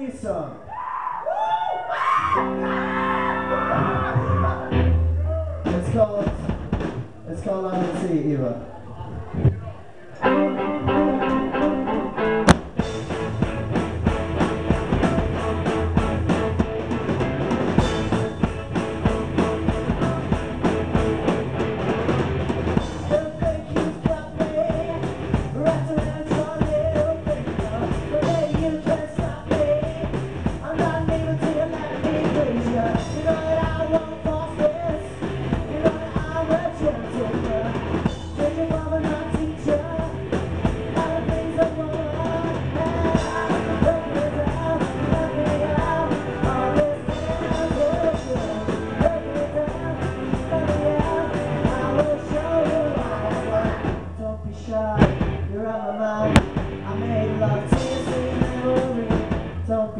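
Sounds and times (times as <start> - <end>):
electric guitars: 1.9 - 7.1, 9.2 - 59.9
bass guitar: 1.9 - 59.9
drum kit: 3.7 - 8.5, 10.3 - 54.3, 54.9 - 55.5, 56.2 - 59.8.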